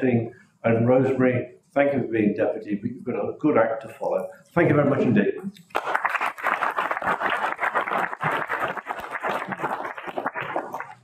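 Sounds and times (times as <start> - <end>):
crowd applauding: 5.7 - 11.0.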